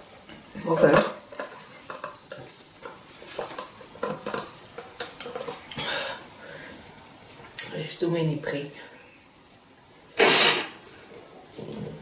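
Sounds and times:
person sneezing: 0:10.2 - 0:10.8.

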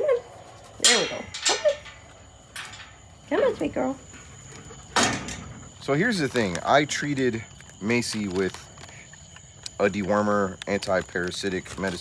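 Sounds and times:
metal gate clattering: 0:00.8 - 0:03.2, 0:04.9 - 0:05.7.

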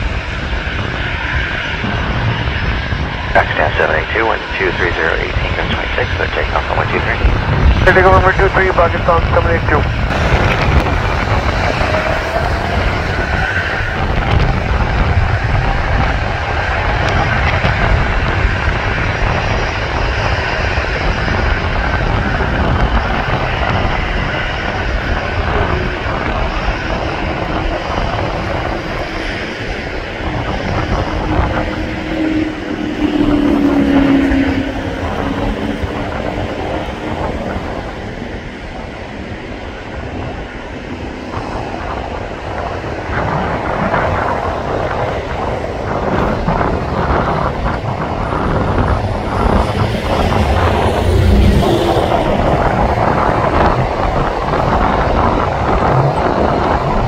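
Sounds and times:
jet engines deep rumble: 0:00.0 - 0:57.0.

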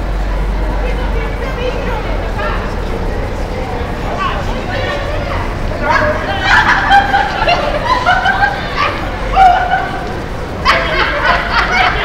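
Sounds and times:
women yelping in fright: 0:04.2 - 0:12.0.

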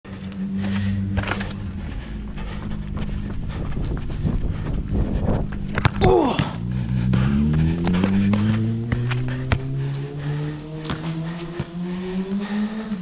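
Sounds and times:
footsteps on paved court: 0:00.1 - 0:13.0
steady low hum: 0:00.1 - 0:13.0.

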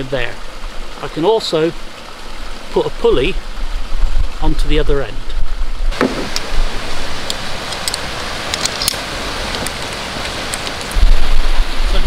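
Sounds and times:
steady rushing outdoor noise: 0:00.0 - 0:12.0.

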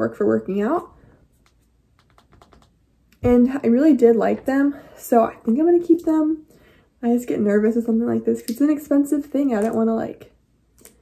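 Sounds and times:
faint light clicks and taps: 0:01.4 - 0:03.2.

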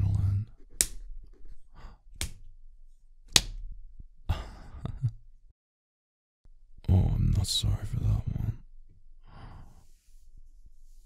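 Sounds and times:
sharp smacks: 0:03.3 - 0:03.6.

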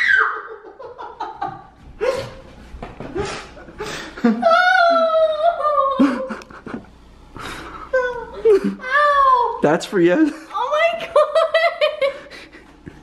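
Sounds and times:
laughter: 0:00.1 - 0:02.4, 0:03.0 - 0:04.5, 0:05.8 - 0:07.0, 0:10.3 - 0:13.0.

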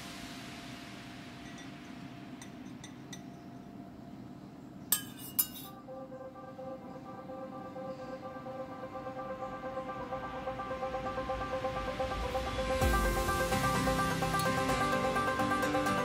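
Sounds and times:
metal pot and spoon clinking: 0:01.4 - 0:03.4, 0:04.9 - 0:05.8.

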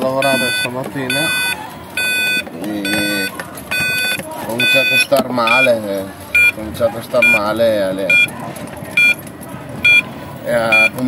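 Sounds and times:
low road rumble: 0:00.0 - 0:11.0
electric scooter short high beeps: 0:00.2 - 0:05.7, 0:08.1 - 0:08.3, 0:09.8 - 0:10.1.

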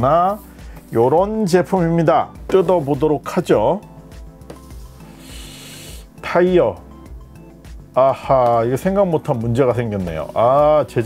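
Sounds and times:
background music: 0:00.0 - 0:11.0
cardboard box scraping on table: 0:04.4 - 0:05.1.

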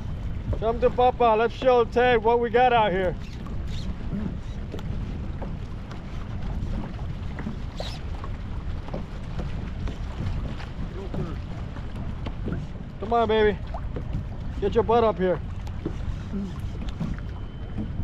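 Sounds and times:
water lapping against kayak: 0:00.0 - 0:18.0
wind rumbling on microphone: 0:00.0 - 0:18.0.

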